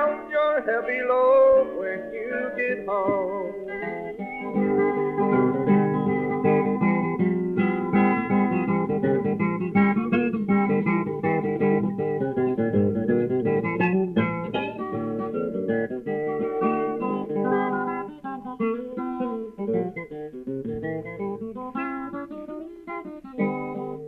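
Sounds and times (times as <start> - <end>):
guitar picking a run: 0.0 - 24.0.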